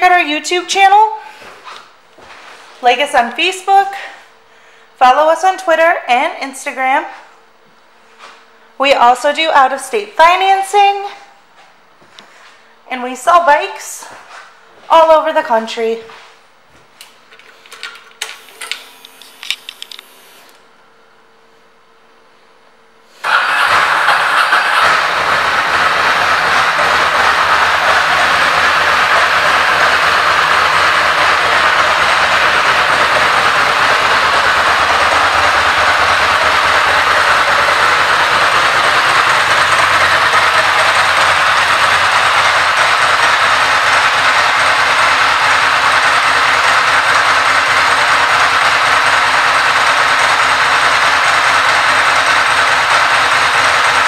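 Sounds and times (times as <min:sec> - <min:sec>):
motorcycle engine starting and idling: 0:23.2 - 0:54.0.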